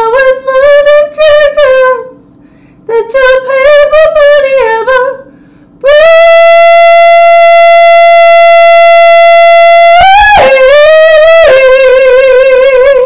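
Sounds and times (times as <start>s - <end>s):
woman singing wordless high note: 5.8s - 13.0s.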